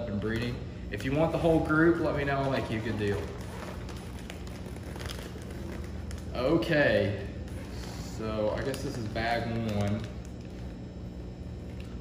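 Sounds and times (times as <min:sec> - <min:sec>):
steady low hum: 0:00.0 - 0:12.0
plastic bags rustling and crinkling: 0:01.0 - 0:12.0.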